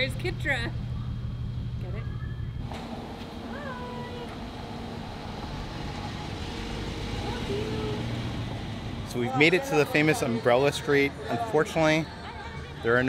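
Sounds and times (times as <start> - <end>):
low street rumble: 0.0 - 13.0.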